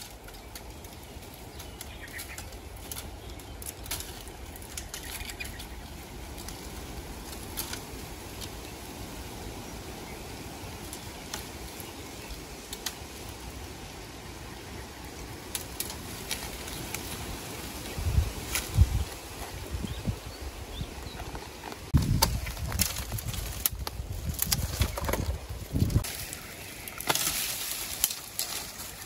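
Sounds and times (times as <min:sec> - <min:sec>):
dry bamboo snapping and cracking: 0:00.0 - 0:09.4, 0:10.2 - 0:13.7, 0:15.2 - 0:19.6, 0:21.2 - 0:29.0.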